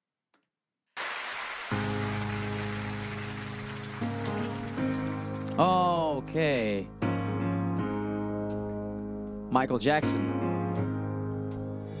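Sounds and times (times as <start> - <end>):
piano slow sustained chords: 1.7 - 9.5.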